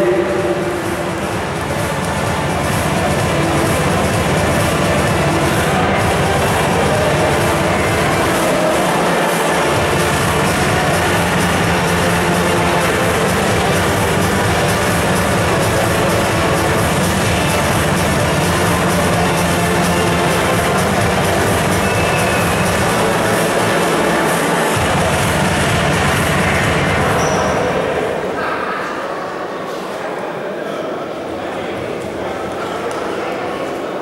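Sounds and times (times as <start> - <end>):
music over sound system: 0.0 - 28.1.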